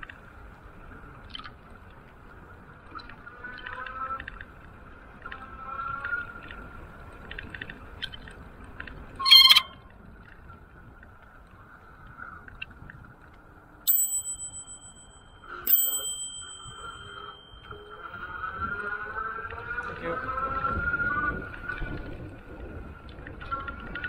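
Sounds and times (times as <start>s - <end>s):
tyres and wind rumble: 4.3s - 15.4s, 16.3s - 24.0s
bicycle bell dinging: 13.9s - 18.8s.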